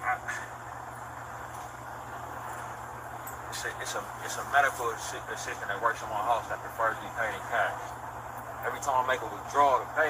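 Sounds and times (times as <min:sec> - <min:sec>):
street and vehicle hum: 0:00.0 - 0:10.0.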